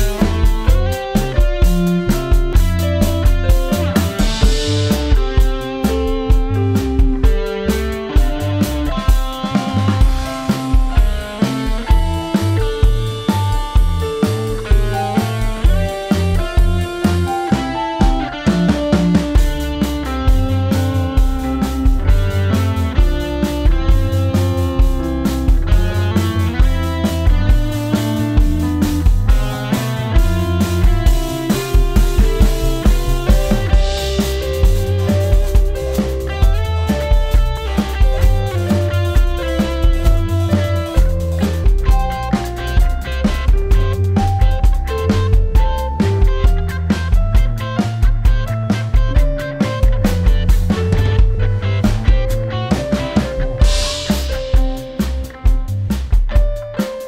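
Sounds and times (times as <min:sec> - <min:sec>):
drum kit kick and snare: 0:00.0 - 0:57.0
electric guitar: 0:00.0 - 0:57.0
keyboard piano line: 0:00.0 - 0:57.0.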